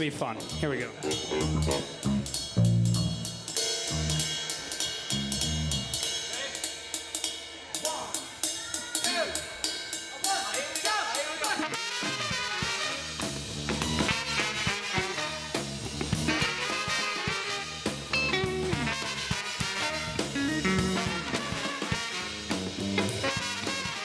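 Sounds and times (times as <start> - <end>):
bass notes: 0.0 - 6.0, 12.9 - 24.0
drum kit beat: 0.0 - 24.0
ska band playing: 0.0 - 24.0.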